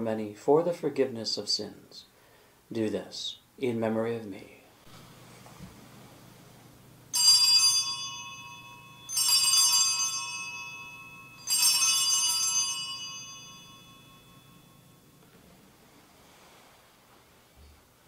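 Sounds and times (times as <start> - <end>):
altar bells jingling: 7.2 - 15.2.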